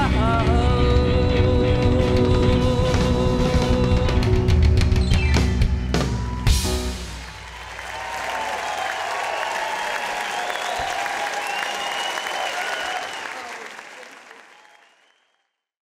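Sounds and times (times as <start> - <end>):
audience applauding and cheering: 5.1 - 15.4.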